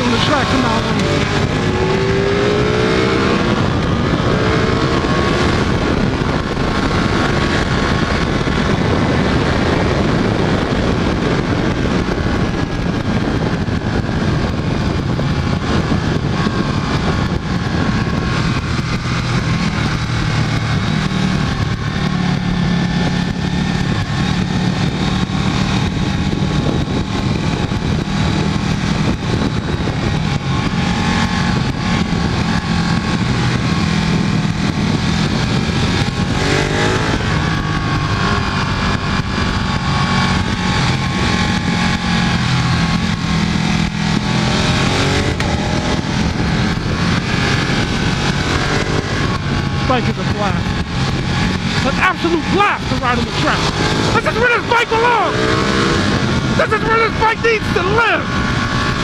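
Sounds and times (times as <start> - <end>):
motorcycle engine running hard: 0.0 - 59.0
rush of wind noise: 0.0 - 59.0.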